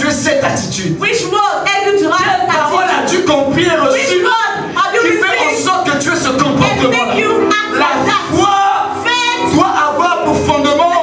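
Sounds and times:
man preaching through microphone: 0:00.0 - 0:01.2, 0:02.5 - 0:11.0.

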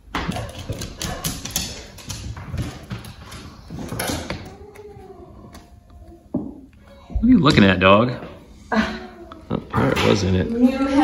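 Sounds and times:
dog whining: 0:03.5 - 0:07.2.

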